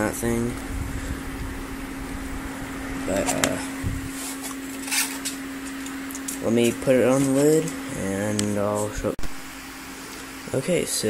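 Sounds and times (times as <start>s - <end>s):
cooling fans humming: 0.0s - 11.0s
styrofoam lid scraping: 3.2s - 5.8s.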